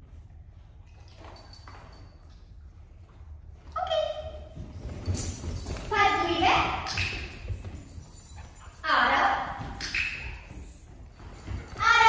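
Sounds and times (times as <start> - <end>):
collar tags jingling: 0.9 - 2.8, 4.1 - 12.0.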